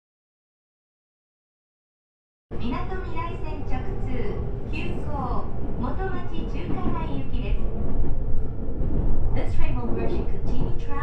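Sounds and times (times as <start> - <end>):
woman's voice train announcement: 2.5 - 7.8, 9.3 - 11.0
moving train rumble: 2.5 - 11.0.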